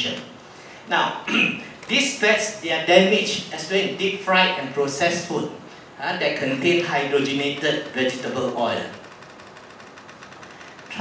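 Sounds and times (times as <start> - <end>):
sound system hiss and buzz: 0.0 - 11.0.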